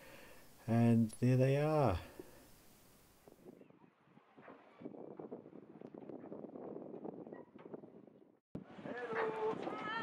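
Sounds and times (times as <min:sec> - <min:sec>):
faint outdoor ambience: 0:00.0 - 0:04.8.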